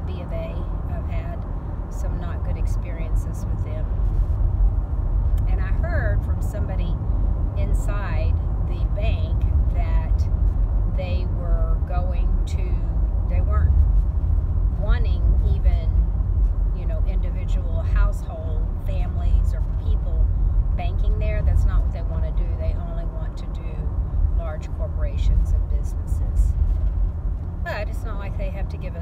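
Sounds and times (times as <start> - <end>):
woman talking: 0.0 - 3.9, 5.4 - 7.0, 7.6 - 10.3, 11.0 - 13.8, 14.8 - 16.0, 16.7 - 26.6, 27.7 - 29.0
car road and engine rumble: 0.0 - 29.0.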